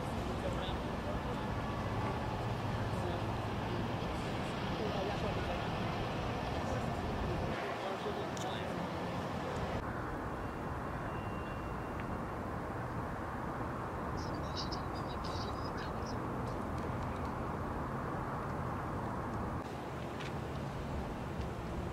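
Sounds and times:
distant traffic hum: 0:00.0 - 0:21.9.

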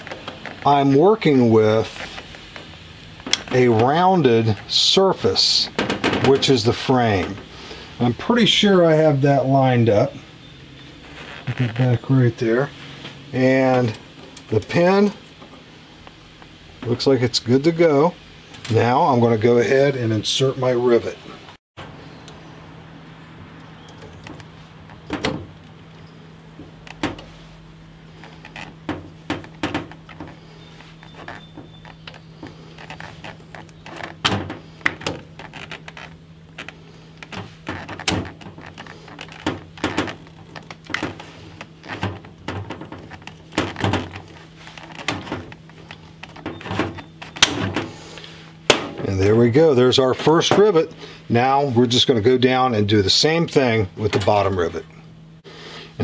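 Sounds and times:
low steady hum: 0:00.0 - 0:56.0.

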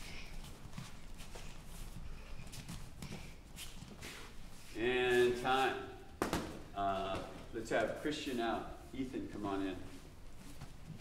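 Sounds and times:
bare feet shuffling on mats: 0:00.0 - 0:11.0.

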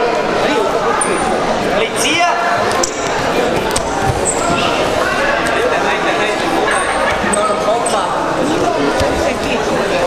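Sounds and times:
people calling out in echoing hall: 0:00.0 - 0:10.0
shoes squeaking on mat: 0:02.7 - 0:04.9.

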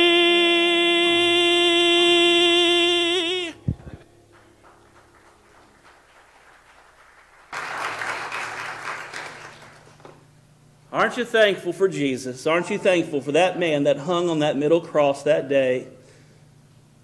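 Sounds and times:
man singing into a microphone: 0:00.0 - 0:03.6
congregation applauding: 0:04.3 - 0:10.2.

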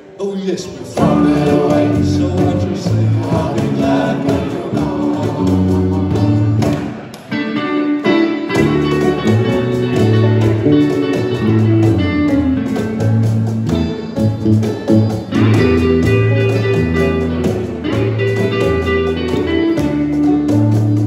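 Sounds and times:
electric guitars: 0:00.0 - 0:21.0
cajon beat: 0:00.9 - 0:07.4, 0:08.1 - 0:21.0
electric bass: 0:01.0 - 0:21.0
banjo: 0:08.5 - 0:21.0.

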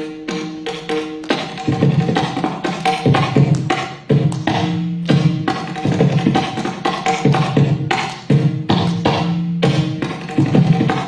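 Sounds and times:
barrel drum rhythmic strokes: 0:00.0 - 0:11.0.

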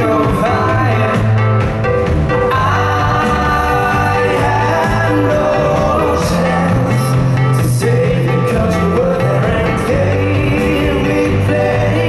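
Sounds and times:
man singing: 0:00.0 - 0:01.4, 0:02.5 - 0:12.0
live rock band playing: 0:00.0 - 0:12.0.

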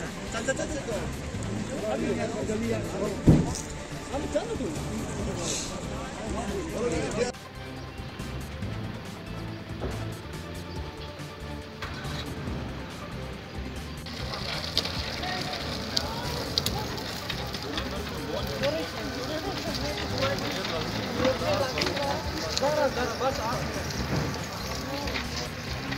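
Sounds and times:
background music: 0:00.0 - 0:25.9
people's voices: 0:00.0 - 0:25.9.

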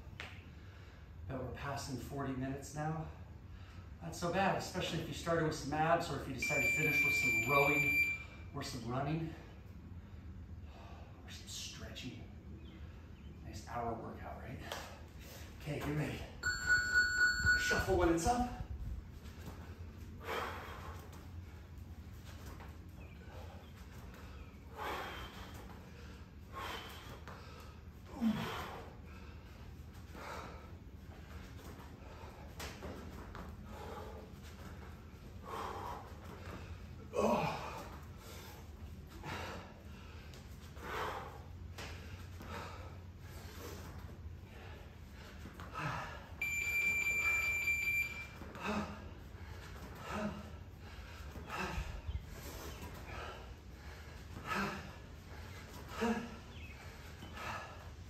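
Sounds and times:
steady electronic beep: 0:06.4 - 0:08.4, 0:16.4 - 0:18.0, 0:46.4 - 0:48.3.

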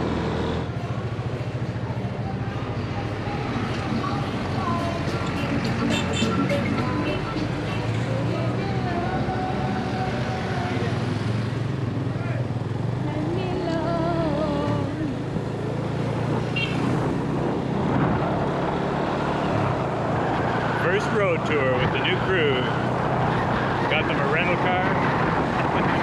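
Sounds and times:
motorbike engine hum: 0:00.0 - 0:26.0
road noise: 0:00.0 - 0:26.0
music: 0:02.8 - 0:10.8
person singing wavering: 0:06.4 - 0:11.1, 0:13.0 - 0:15.2.

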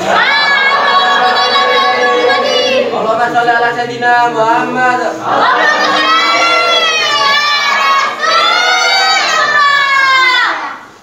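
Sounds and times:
congregation chanting together: 0:00.0 - 0:10.8.

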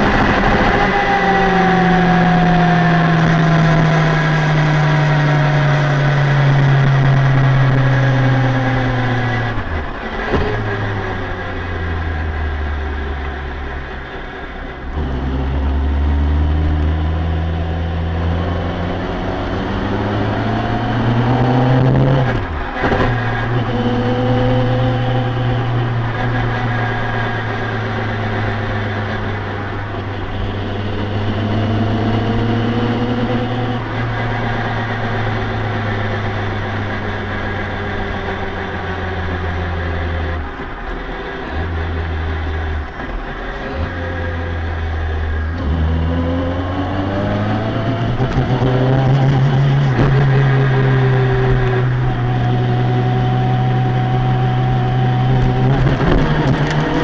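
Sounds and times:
car engine from inside: 0:00.0 - 0:57.0.

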